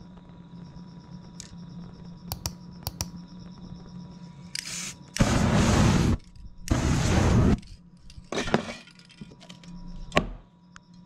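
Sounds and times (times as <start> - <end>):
sharp clicks: 2.3 - 3.2
aerosol spray hiss: 4.6 - 7.6
whoosh of flame igniting: 4.7 - 7.8.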